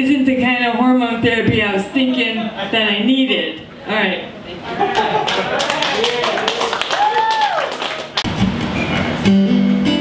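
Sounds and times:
audience clapping: 4.9 - 8.7
person cheering: 5.5 - 7.8
acoustic guitar playing: 8.2 - 10.0.

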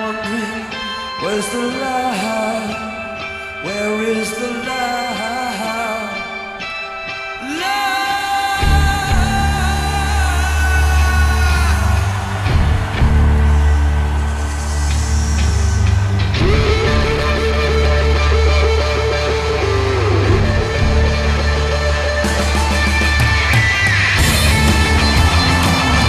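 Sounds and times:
electric guitar: 0.0 - 26.0
heavy bass line: 8.6 - 26.0.

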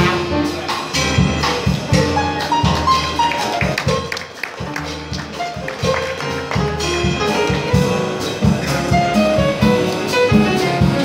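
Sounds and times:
drums: 0.0 - 11.0
upright bass: 0.0 - 11.0.

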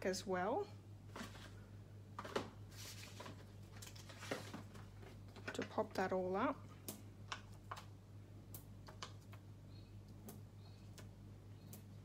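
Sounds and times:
low steady hum: 0.0 - 12.0
paper rustling: 2.2 - 5.6.

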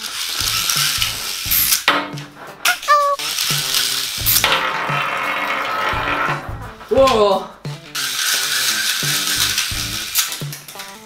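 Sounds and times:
spinning top toy whirring: 0.0 - 1.9, 2.6 - 6.5, 7.9 - 10.9.

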